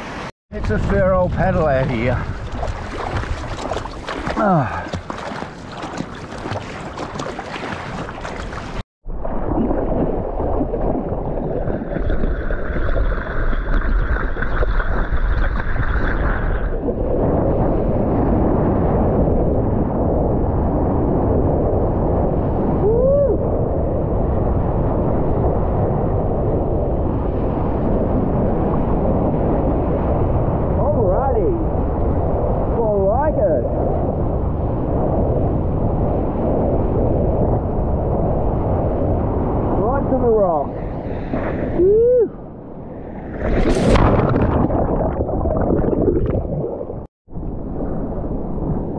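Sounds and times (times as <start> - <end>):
water rushing and sloshing: 0.0 - 18.9, 27.2 - 41.8, 42.4 - 48.9
water gurgling: 0.6 - 18.1, 43.0 - 47.1.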